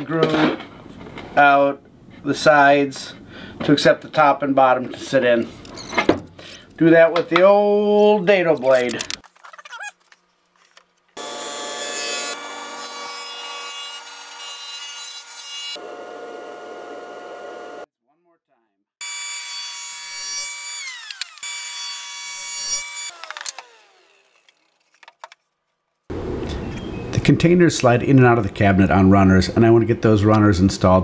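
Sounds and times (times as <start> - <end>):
table saw cutting plywood: 11.2 - 17.9, 19.0 - 24.9
saw blade winding down: 19.0 - 25.0.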